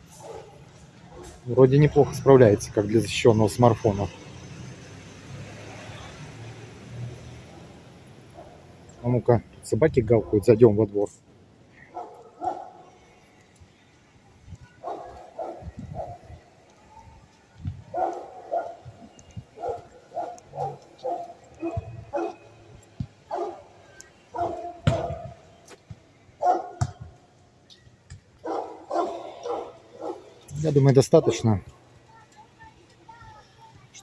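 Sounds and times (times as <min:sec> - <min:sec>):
dogs barking: 0:00.1 - 0:01.4, 0:07.5 - 0:08.7, 0:10.1 - 0:10.6, 0:11.8 - 0:12.8, 0:14.8 - 0:16.4, 0:17.9 - 0:22.6, 0:23.2 - 0:25.4, 0:26.4 - 0:27.0, 0:28.4 - 0:30.5, 0:31.1 - 0:31.5.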